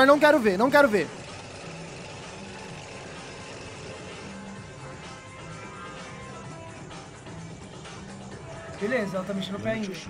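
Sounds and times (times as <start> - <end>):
chainsaw running: 0.0 - 6.4.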